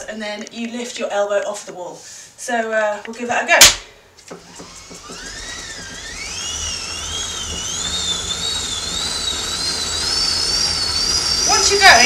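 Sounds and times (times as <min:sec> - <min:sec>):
bike on rollers whining: 0:04.3 - 0:12.0.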